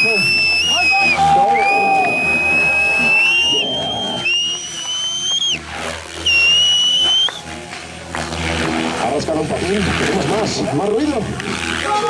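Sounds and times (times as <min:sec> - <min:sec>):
model helicopter high-pitched whine: 0:00.0 - 0:12.0.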